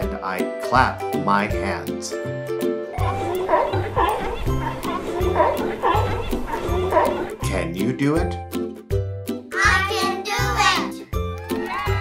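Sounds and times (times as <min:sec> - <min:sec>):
children's background music: 0:00.0 - 0:12.0
sea lions barking: 0:03.0 - 0:07.4.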